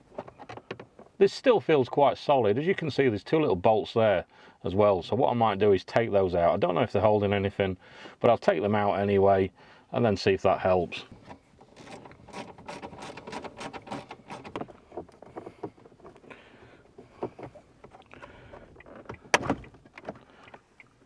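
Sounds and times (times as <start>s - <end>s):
plastic trim clicking and rattling: 11.2s - 16.3s.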